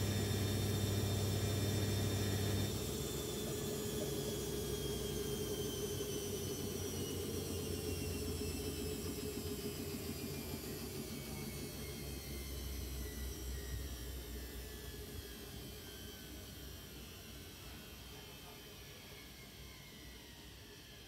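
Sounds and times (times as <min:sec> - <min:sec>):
washing machine motor whine: 0:00.0 - 0:21.0.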